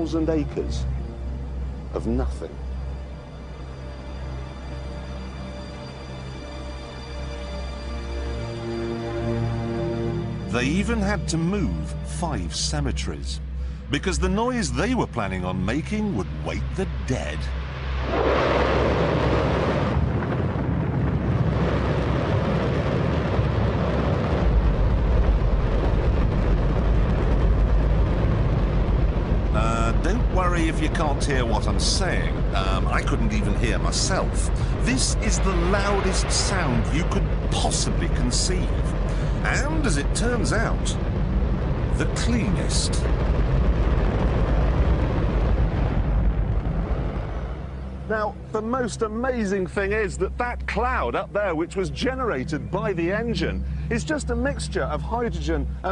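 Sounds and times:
rocket engine roar: 14.2 - 50.4.

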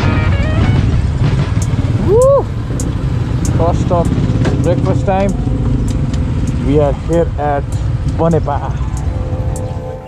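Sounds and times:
background music: 0.0 - 3.4
motorcycle engines rumbling: 0.0 - 10.0.

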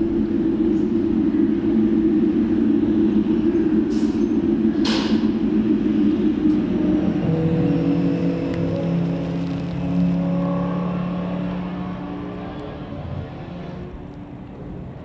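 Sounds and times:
car vee eight engine driving away: 0.0 - 15.0
racing car engine rumbling: 0.0 - 15.0.

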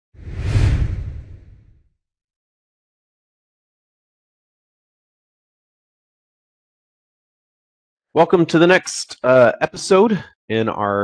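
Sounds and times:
whoosh with deep rumble: 0.2 - 1.8.

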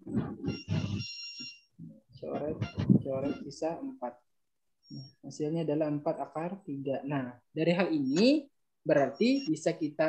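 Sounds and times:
indistinct low voice: 0.0 - 1.0, 2.2 - 4.1
high ringing tone: 0.5 - 1.7.

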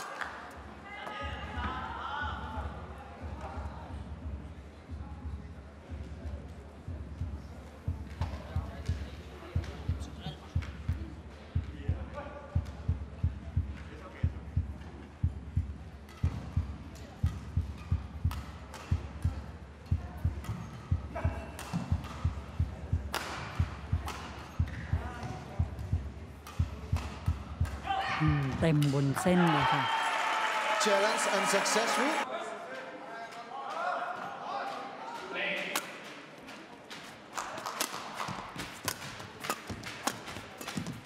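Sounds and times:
rhythmic low thumping: 2.3 - 28.7
woman commentator speaking: 28.2 - 29.9.

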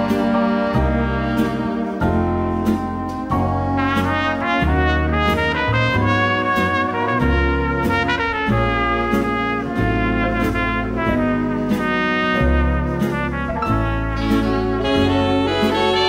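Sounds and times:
bass line: 0.0 - 16.0
big band brass ballad: 0.0 - 16.0.

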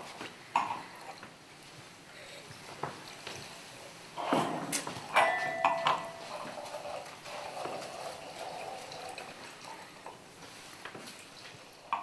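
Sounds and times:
glass clinks: 5.2 - 6.4
wine pouring into a glass: 5.7 - 12.0.

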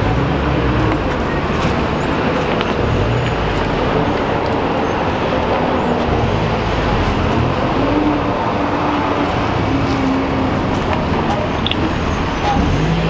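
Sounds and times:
traffic noise: 0.0 - 13.0
vehicle engine running: 0.0 - 13.0.

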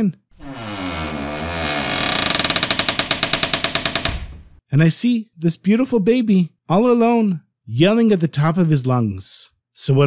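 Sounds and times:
door hinge creaking: 0.4 - 4.6.

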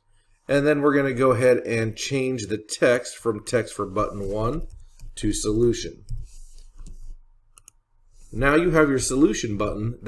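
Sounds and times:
computer mouse clicks: 6.0 - 7.8.

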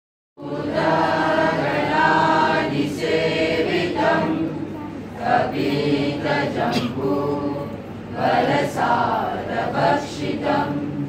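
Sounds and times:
mixed choir singing in unison: 0.4 - 11.0.

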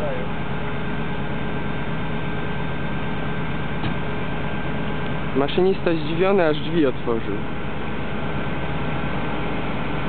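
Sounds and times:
diesel locomotive idling: 0.0 - 10.0.

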